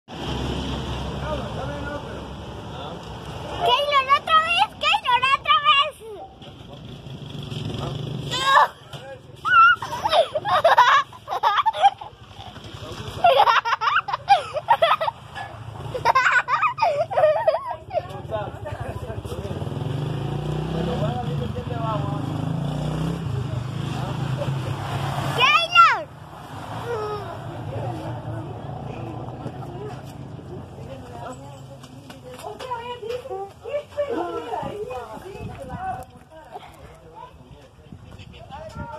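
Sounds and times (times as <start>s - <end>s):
vehicle engine rumbling: 0.1s - 38.9s.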